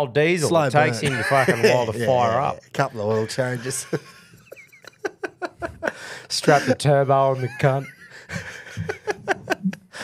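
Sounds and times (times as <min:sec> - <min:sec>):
men laughing breathlessly: 0:02.9 - 0:10.0.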